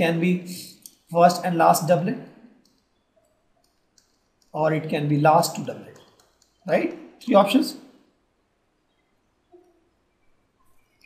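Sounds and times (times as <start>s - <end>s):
person speaking: 0.0s - 2.4s, 4.5s - 7.8s
stylus clicking on pen tablet: 2.6s - 4.6s, 5.9s - 6.6s.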